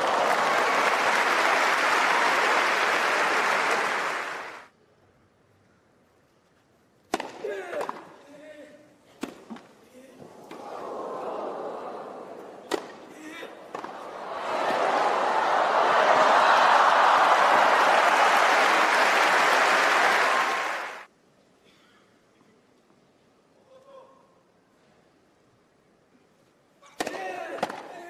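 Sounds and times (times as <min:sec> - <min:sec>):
crowd cheering and applause: 0:00.0 - 0:04.7, 0:10.4 - 0:12.6, 0:13.7 - 0:21.1
racket hitting tennis ball: 0:07.1 - 0:08.1, 0:09.2 - 0:09.7, 0:12.6 - 0:14.1.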